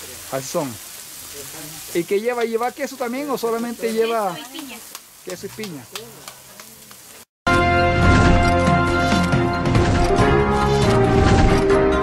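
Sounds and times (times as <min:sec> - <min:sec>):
food sizzling in frying: 0:00.0 - 0:07.3.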